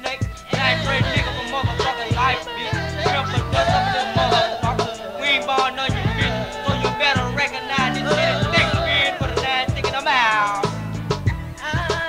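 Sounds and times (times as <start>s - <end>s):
rap beat with deep bass: 0.0s - 12.0s.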